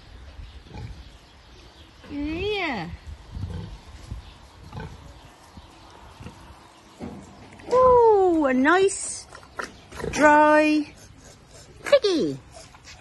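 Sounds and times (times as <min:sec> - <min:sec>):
pig grunting and snuffling: 0:00.6 - 0:01.2, 0:03.3 - 0:05.4, 0:09.0 - 0:13.0
woman's wordless call: 0:11.8 - 0:12.5.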